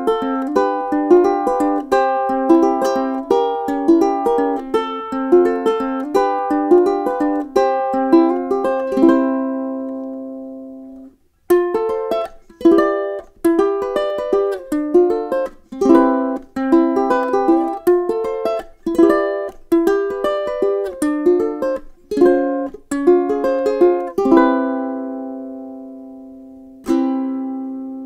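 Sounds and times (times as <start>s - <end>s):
picked ukulele melody: 0.0s - 28.0s
ukulele strumming chords: 0.0s - 28.0s.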